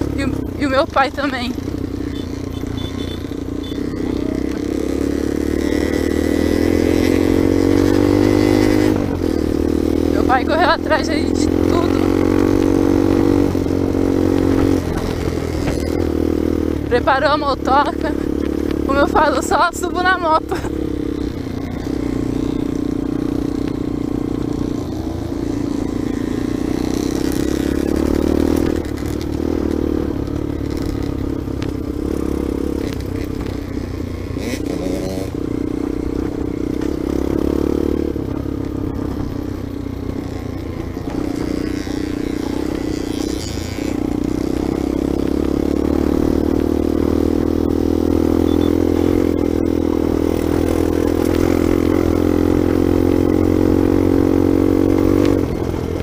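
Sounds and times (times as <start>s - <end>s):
dirt bike engine: 0.0s - 56.0s.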